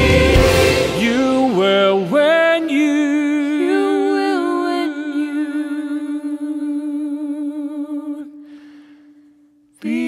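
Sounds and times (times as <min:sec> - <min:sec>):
voices singing a chord: 0:00.0 - 0:08.3, 0:09.8 - 0:10.0.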